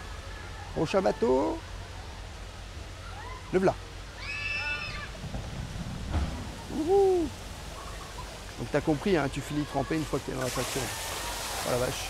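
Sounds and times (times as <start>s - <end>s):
low background wash: 0.0s - 12.0s
high-pitched human scream: 4.2s - 5.1s.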